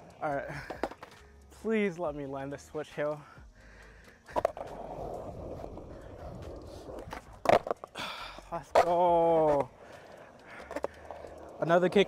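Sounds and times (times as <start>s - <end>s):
skateboard wheels rolling on concrete: 0.0s - 3.4s, 4.2s - 12.0s
skateboard clack: 0.7s - 1.2s, 4.3s - 8.0s, 8.6s - 12.0s.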